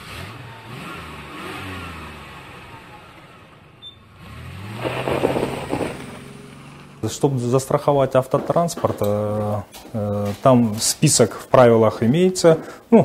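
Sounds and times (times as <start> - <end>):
car engines passing: 0.0 - 8.4.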